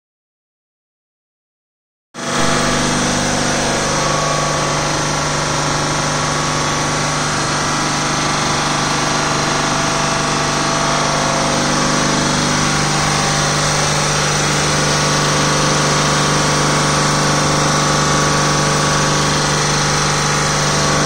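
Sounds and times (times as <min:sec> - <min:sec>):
refrigeration compressor running: 0:02.2 - 0:21.0.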